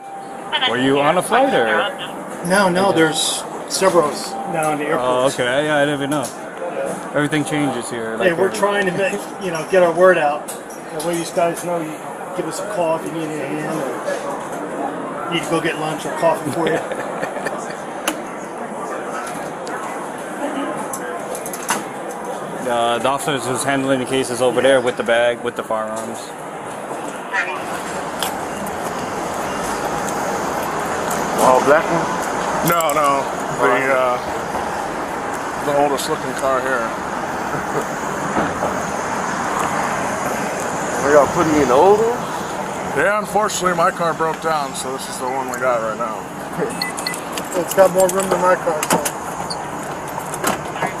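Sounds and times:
road traffic noise: 0:00.0 - 0:51.0.

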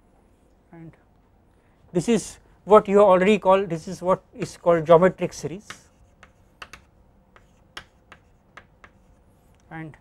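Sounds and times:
chalk tapping on chalkboard: 0:05.6 - 0:09.2.

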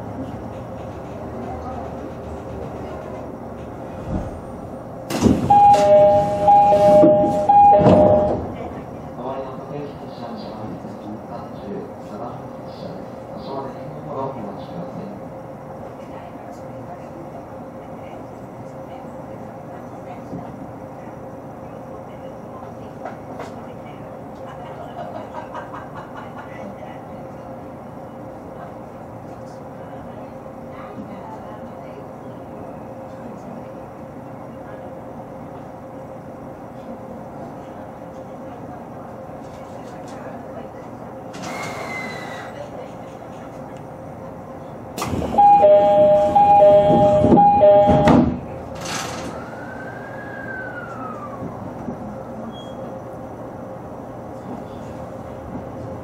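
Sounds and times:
train cab hum: 0:00.0 - 0:25.6, 0:26.5 - 0:49.5, 0:50.6 - 0:56.0
door thud: 0:05.1 - 0:05.9
two-note train door chime: 0:05.4 - 0:08.5, 0:45.3 - 0:48.4
sliding doors air hiss: 0:41.4 - 0:42.6.

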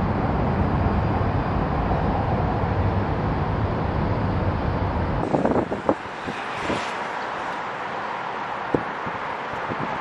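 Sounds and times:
wind buffeting microphone: 0:00.0 - 0:07.4, 0:08.3 - 0:10.0
distant city traffic hum: 0:00.0 - 0:10.0.

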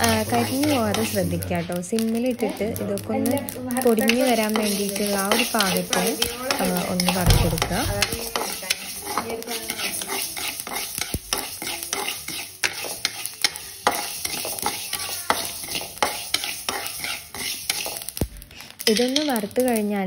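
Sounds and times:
spatula scraping pan: 0:00.0 - 0:02.7, 0:03.4 - 0:19.7
seeds clicking against pan: 0:00.0 - 0:20.0.

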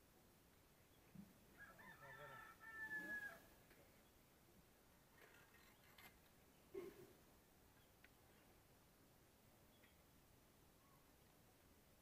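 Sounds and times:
rooster crowing: 0:01.6 - 0:03.5.

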